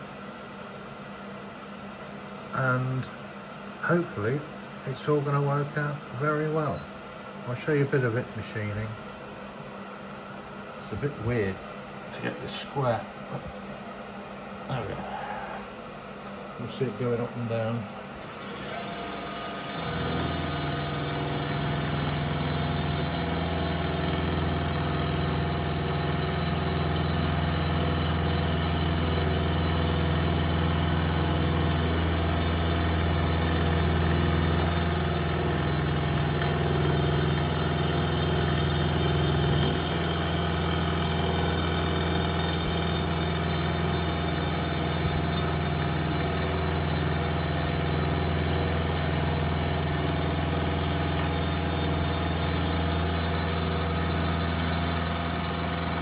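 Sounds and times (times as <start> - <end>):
milling machine cutting metal: 18.0 - 56.0.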